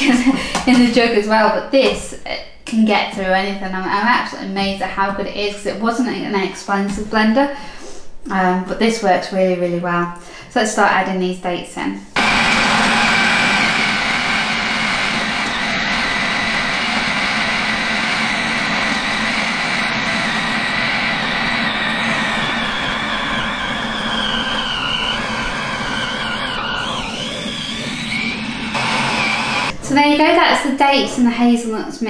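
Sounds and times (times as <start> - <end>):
food processor motor whining: 12.2 - 29.8.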